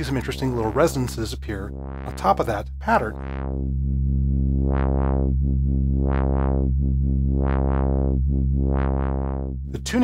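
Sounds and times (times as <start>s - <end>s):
low synthesizer tone with filter sweep: 0.0s - 10.0s.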